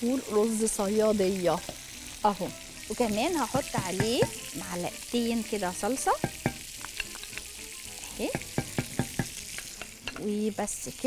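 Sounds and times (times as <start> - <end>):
hot oil sizzling: 0.0 - 11.0.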